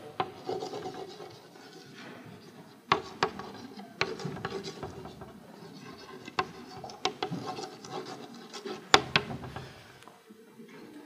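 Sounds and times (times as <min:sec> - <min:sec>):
chalk scratching on blackboard: 0:00.0 - 0:10.0
chalk tapping on blackboard: 0:00.0 - 0:10.0.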